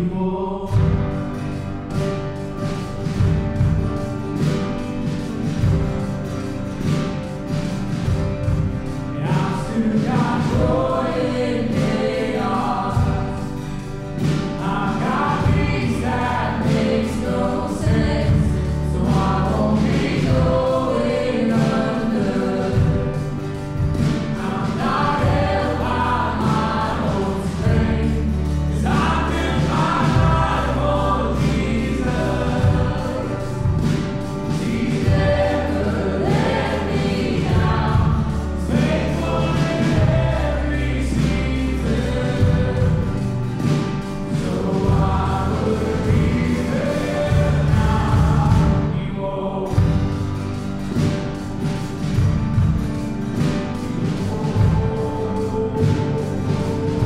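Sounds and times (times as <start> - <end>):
congregation singing: 0.0 - 57.0
worship band playing: 0.0 - 57.0.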